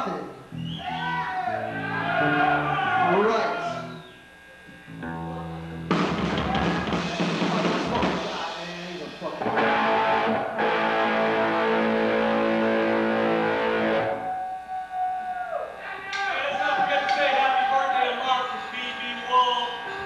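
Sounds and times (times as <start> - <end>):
live hard rock band: 5.9 - 8.5, 9.4 - 14.4.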